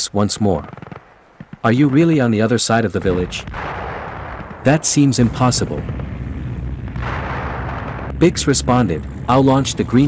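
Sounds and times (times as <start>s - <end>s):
low rumble of distant combat: 0.6s - 10.0s
distant explosion: 3.0s - 10.0s.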